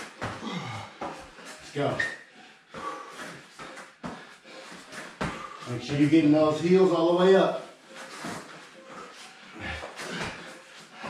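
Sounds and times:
people breathing hard: 0:00.0 - 0:05.9, 0:07.7 - 0:11.0.

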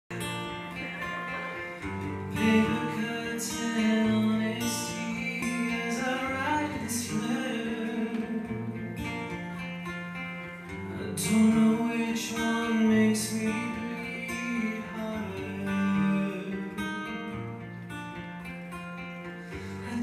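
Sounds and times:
guitar chords: 0:00.1 - 0:20.0.

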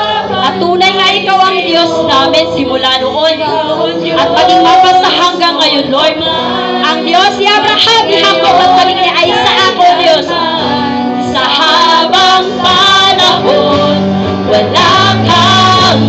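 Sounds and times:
live band with guitars: 0:00.0 - 0:16.0
woman singing into microphone: 0:00.0 - 0:16.0.

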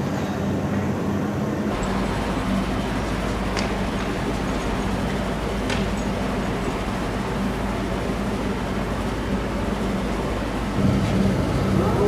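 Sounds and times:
noisy background: 0:00.0 - 0:12.0
heavy vehicle engine running: 0:01.6 - 0:12.0.

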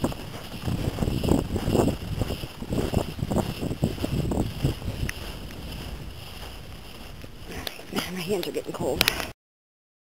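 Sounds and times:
wind rumbling on microphone: 0:00.0 - 0:09.4.

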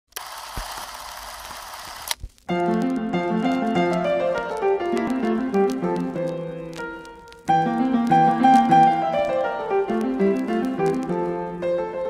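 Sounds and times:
film projector running: 0:00.1 - 0:02.2.

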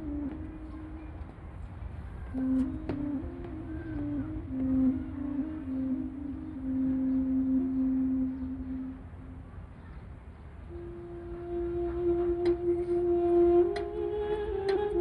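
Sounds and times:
slow flute melody: 0:00.0 - 0:01.6, 0:02.2 - 0:09.6, 0:10.7 - 0:15.0
low steady rumble: 0:00.0 - 0:15.0.

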